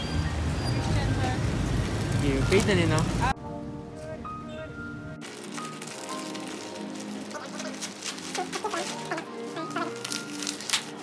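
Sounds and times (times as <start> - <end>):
background music: 0.6 - 11.0
plastic packaging crinkling: 5.2 - 11.0.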